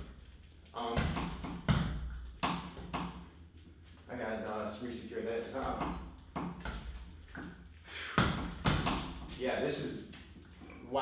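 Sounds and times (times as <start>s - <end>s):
punches hitting punching bag: 0.9s - 3.1s, 8.2s - 9.3s.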